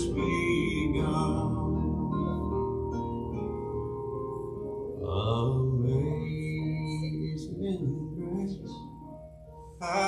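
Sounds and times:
low voice singing long notes: 0:00.0 - 0:02.8
soft instrumental accompaniment: 0:00.0 - 0:10.0.

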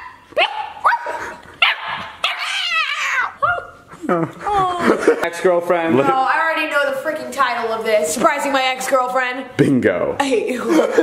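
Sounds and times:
puppy yipping and barking: 0:00.0 - 0:03.2.

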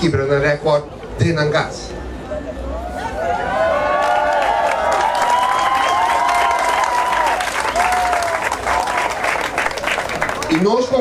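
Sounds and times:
crowd applauding: 0:03.4 - 0:11.0.

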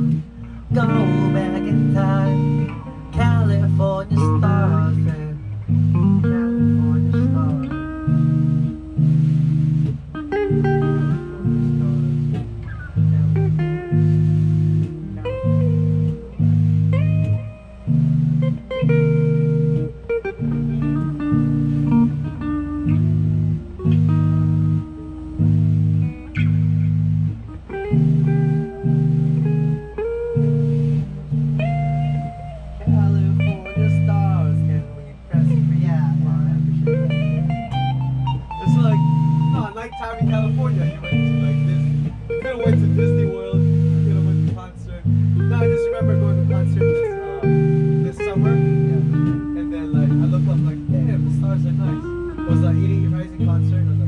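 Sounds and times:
electric bass repeated notes: 0:00.0 - 0:54.0
electric guitar melodic line: 0:00.0 - 0:54.0.

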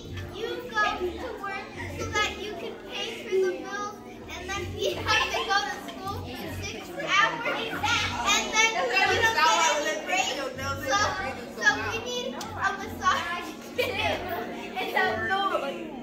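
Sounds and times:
children chattering: 0:00.0 - 0:16.0.

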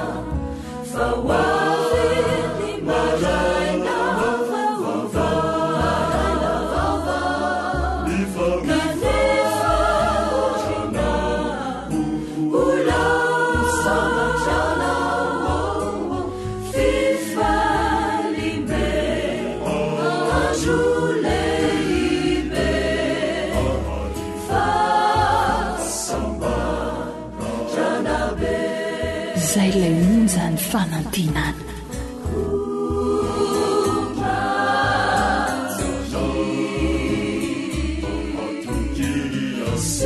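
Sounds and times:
choir singing: 0:00.0 - 0:30.9, 0:32.2 - 0:40.0
instrumental accompaniment with bass: 0:00.0 - 0:40.0.

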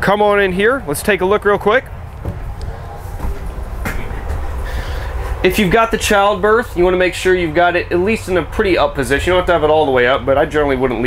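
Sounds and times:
steady low rumble: 0:00.0 - 0:11.0
man's footsteps stepping up: 0:02.1 - 0:05.4.

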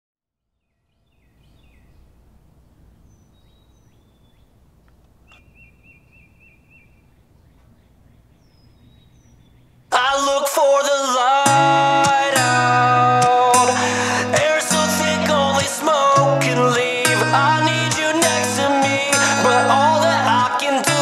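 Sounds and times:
bird chirps: 0:00.5 - 0:10.0
bird trill: 0:00.6 - 0:10.0
faint click: 0:04.8 - 0:05.5
acoustic guitar music: 0:09.9 - 0:21.0.

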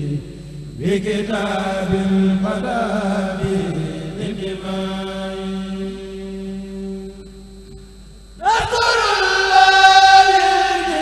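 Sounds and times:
men chanting in unison: 0:00.8 - 0:06.4, 0:08.4 - 0:11.0.

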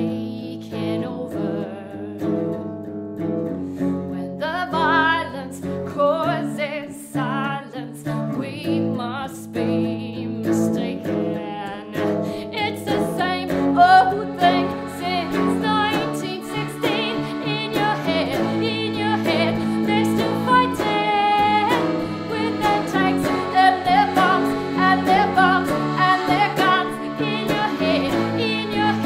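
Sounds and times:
woman singing with vibrato: 0:00.0 - 0:02.6, 0:04.1 - 0:29.0
accordion: 0:00.0 - 0:29.0
electric guitar: 0:00.0 - 0:29.0.

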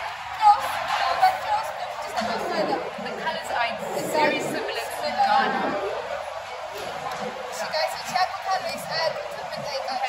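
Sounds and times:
indistinct chatter: 0:00.0 - 0:10.0.

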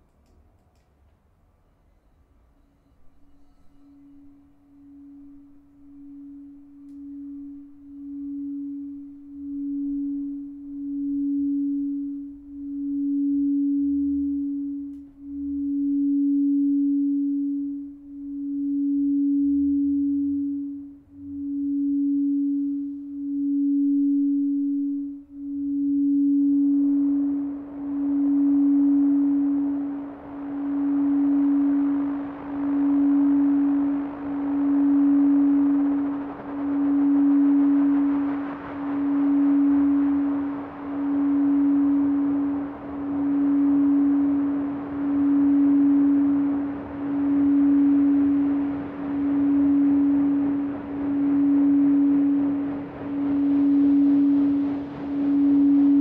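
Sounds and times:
crystal singing bowl tone: 0:01.8 - 0:56.0
synthesizer noise hiss: 0:03.1 - 0:56.0.

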